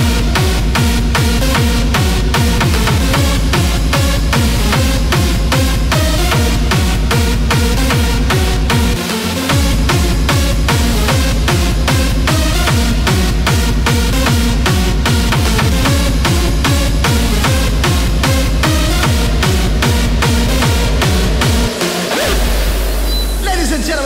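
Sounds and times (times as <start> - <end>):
hard kick drum: 0.0 - 24.0
synth melody: 0.0 - 24.0.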